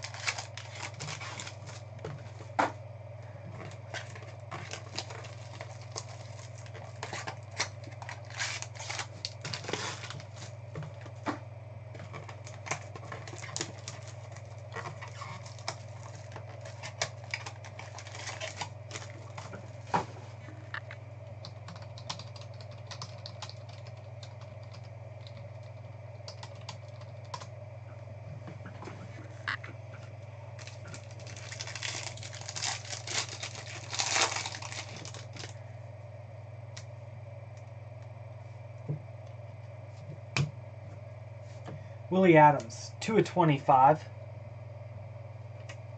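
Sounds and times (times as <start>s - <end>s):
wrapper crinkling: 0.0s - 1.9s, 3.6s - 10.6s, 12.1s - 19.6s, 30.6s - 35.6s
low electrical hum: 0.0s - 45.9s.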